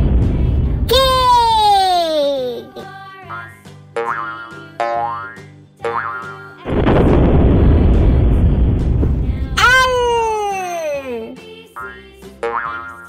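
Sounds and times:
loud rushing noise: 0:00.0 - 0:01.0, 0:06.7 - 0:09.7
children's music: 0:00.9 - 0:13.0
springy cartoon boings: 0:04.0 - 0:06.4, 0:12.4 - 0:13.0.

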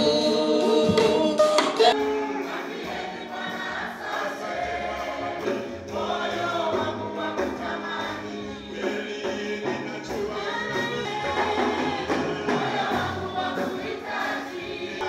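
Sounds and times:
women singing gospel song: 0:00.0 - 0:15.0.

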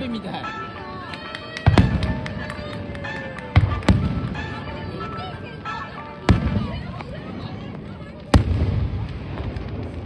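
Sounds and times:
firework shells booming: 0:03.0 - 0:04.7.

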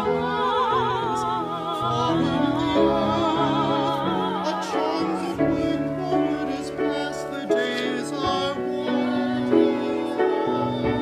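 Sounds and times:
singers holding notes with vibrato: 0:00.0 - 0:11.0
sustained accompaniment: 0:00.0 - 0:11.0.

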